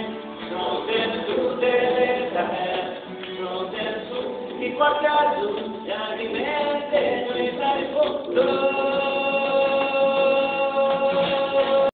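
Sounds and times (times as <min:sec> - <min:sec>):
acoustic guitar: 0:00.0 - 0:11.9
person singing: 0:00.0 - 0:11.9.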